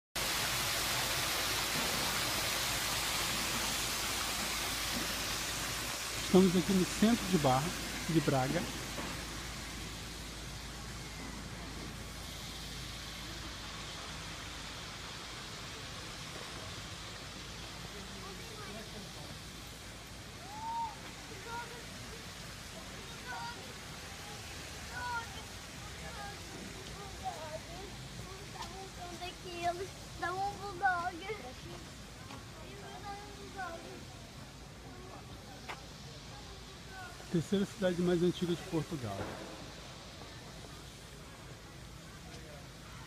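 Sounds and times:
outdoor hiss: 0:00.2 - 0:43.0
faint voices of passersby: 0:06.2 - 0:43.0.

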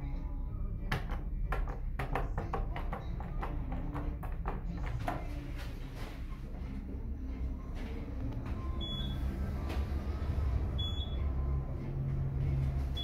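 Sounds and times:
elevator hum: 0:05.9 - 0:13.0.

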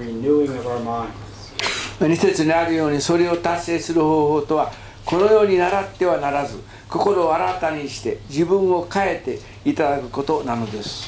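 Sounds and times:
man speaking: 0:00.0 - 0:11.0
short hiss: 0:01.6 - 0:02.0.

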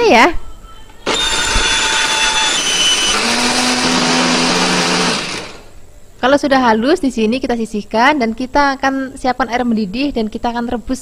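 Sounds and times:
blender grinding: 0:01.1 - 0:05.8.

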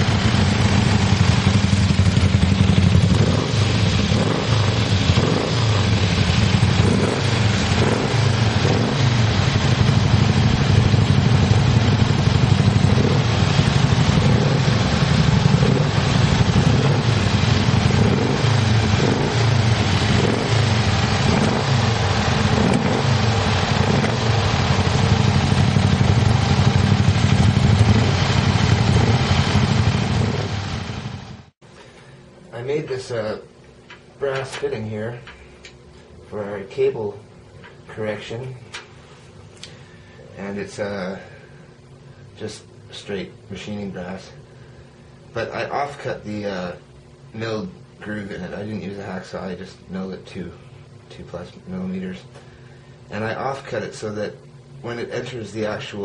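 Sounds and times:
motorcycle engine running: 0:00.0 - 0:31.5.

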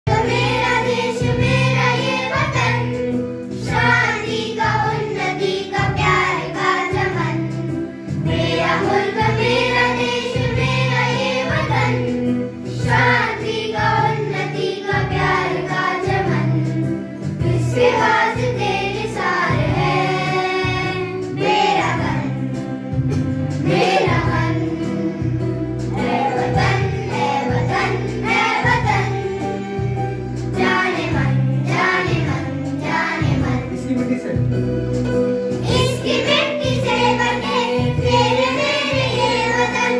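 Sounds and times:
children singing: 0:00.1 - 0:22.4, 0:23.6 - 0:33.6, 0:35.6 - 0:39.9
electronic keyboard: 0:00.1 - 0:39.9.

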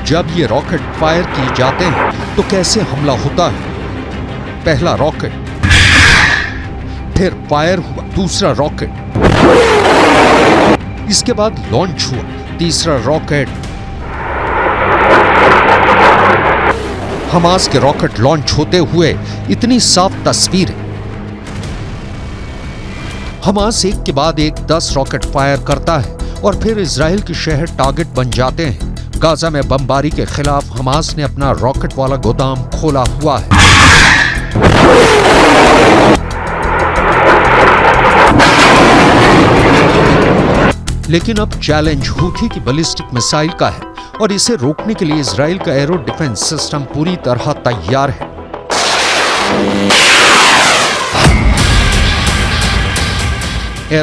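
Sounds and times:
background music: 0:00.0 - 0:54.0
rocket launch roar: 0:05.6 - 0:06.7, 0:09.2 - 0:10.8, 0:14.0 - 0:17.6, 0:33.5 - 0:40.7, 0:48.7 - 0:53.1.

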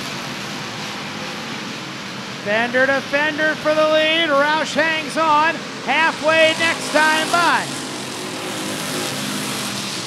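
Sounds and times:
distant race car engines: 0:00.0 - 0:10.0.

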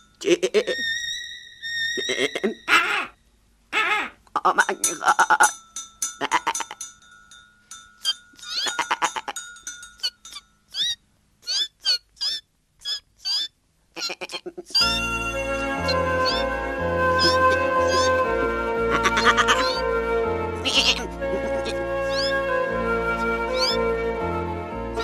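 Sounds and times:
goat bleating: 0:00.2 - 0:00.8, 0:06.2 - 0:06.8, 0:08.4 - 0:09.4, 0:13.3 - 0:14.8, 0:17.2 - 0:18.2, 0:18.9 - 0:19.8, 0:20.6 - 0:22.3, 0:23.6 - 0:23.8
short rising chirps: 0:00.8 - 0:02.5, 0:22.0 - 0:22.4, 0:23.6 - 0:23.8.

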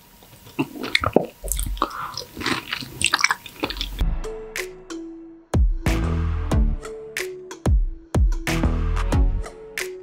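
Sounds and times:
wet squishy eating: 0:00.3 - 0:04.0.

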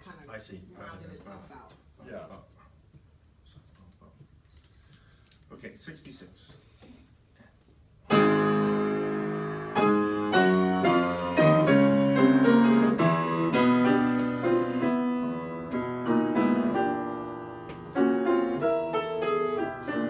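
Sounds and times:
grand piano chords and melody: 0:08.1 - 0:20.0.

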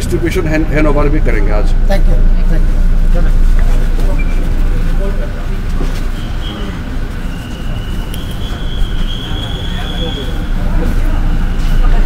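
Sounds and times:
crowd chatter: 0:00.0 - 0:12.0
steady high tone: 0:00.0 - 0:12.0
microphone handling rumble: 0:00.5 - 0:06.2.

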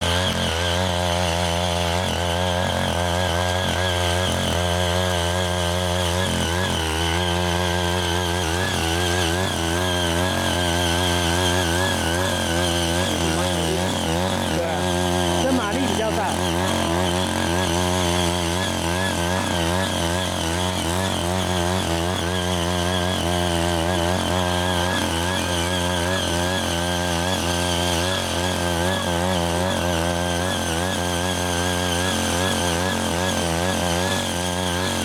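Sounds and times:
rotary tines tilling soil: 0:00.0 - 0:35.0
small petrol engine running: 0:00.0 - 0:35.0.

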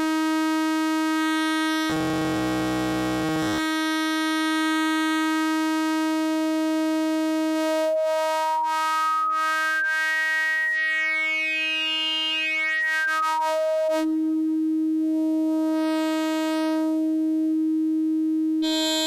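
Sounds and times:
oscillator droning: 0:08.0 - 0:15.4
rising bright overtone: 0:08.8 - 0:14.0.

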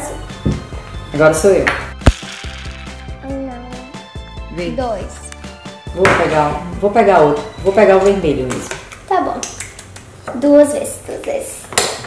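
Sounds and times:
background music: 0:00.0 - 0:09.1.

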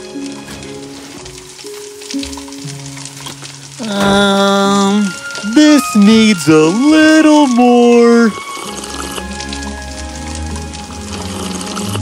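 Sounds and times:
food sizzling in a pan: 0:00.0 - 0:12.0
soft music with held notes: 0:00.0 - 0:12.0.

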